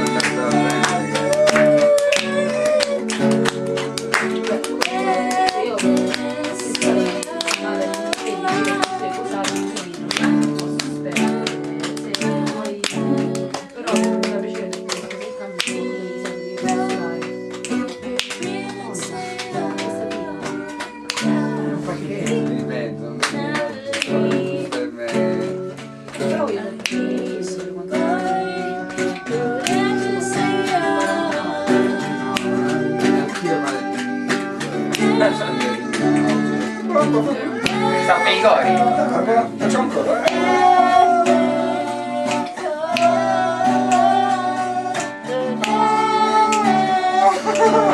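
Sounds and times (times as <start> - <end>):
guitar strumming chords: 0.0 - 47.9
person singing: 0.0 - 47.9.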